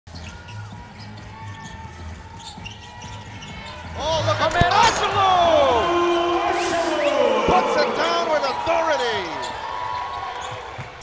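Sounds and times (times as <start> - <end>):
sneakers squeaking: 0.1 - 5.2, 6.9 - 11.0.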